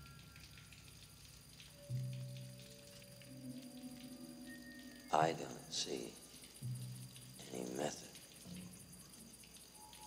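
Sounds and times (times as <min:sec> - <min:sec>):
low synthesizer drones: 0:06.5 - 0:07.6.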